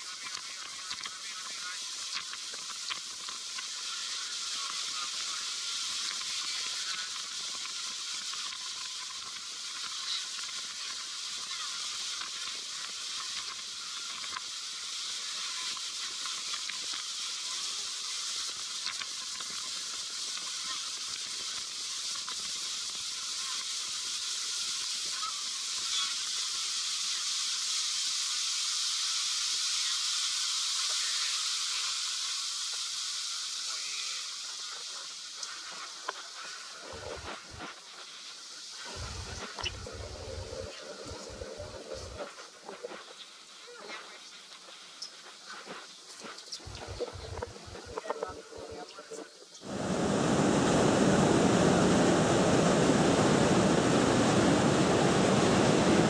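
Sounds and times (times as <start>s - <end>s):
rushing wind and water spray: 34.5s - 43.5s, 49.6s - 56.0s.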